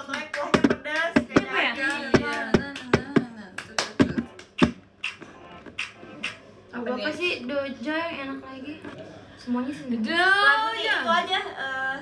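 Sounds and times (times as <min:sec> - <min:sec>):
sharp taps or clicks: 0:04.0 - 0:06.4.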